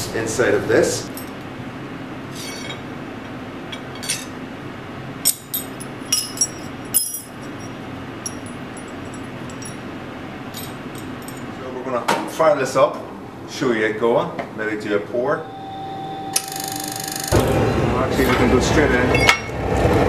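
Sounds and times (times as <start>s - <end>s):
steady low hum: 0.0s - 20.0s
iron pieces clinking on anvil: 3.7s - 4.4s, 5.2s - 9.9s, 10.6s - 11.5s, 19.1s - 19.6s.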